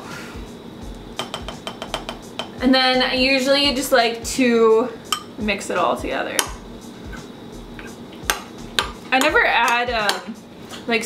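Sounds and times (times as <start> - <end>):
spoon clinking against ceramic bowl: 1.2 - 2.6, 5.1 - 5.4.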